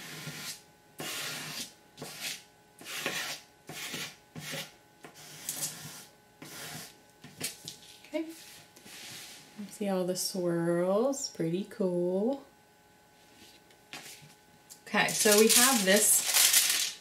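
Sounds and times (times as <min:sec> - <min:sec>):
edge scraping wet paper: 0:00.0 - 0:07.0.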